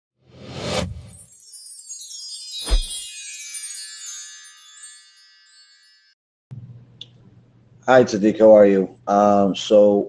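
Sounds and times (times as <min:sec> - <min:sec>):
shimmering chime sound effect: 0:00.8 - 0:06.2
man speaking: 0:07.9 - 0:10.0.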